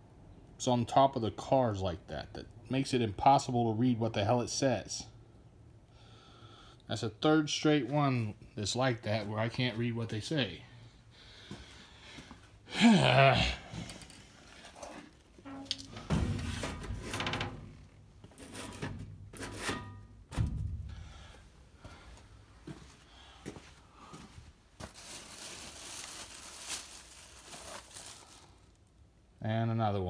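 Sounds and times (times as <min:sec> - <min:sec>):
packaging rustling: 0:24.8 - 0:28.8.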